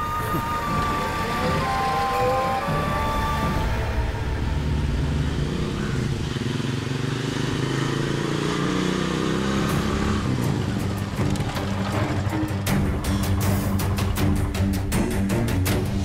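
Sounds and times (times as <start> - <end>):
motorcycle engine running: 2.7 - 16.0.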